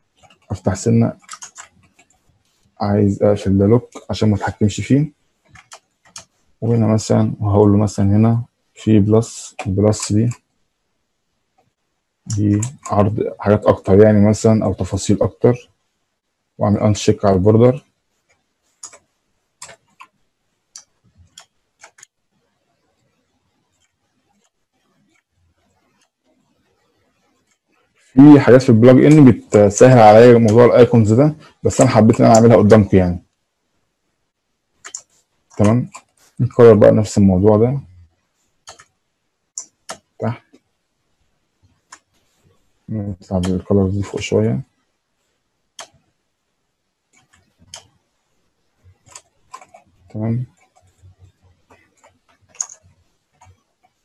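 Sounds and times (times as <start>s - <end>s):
mouse and keyboard clicks: 0.1s - 2.2s, 5.5s - 6.4s, 12.3s - 13.0s, 18.3s - 20.2s, 20.8s - 22.1s, 34.8s - 36.4s, 38.6s - 38.9s, 39.6s - 40.6s, 47.1s - 48.0s, 49.0s - 54.0s.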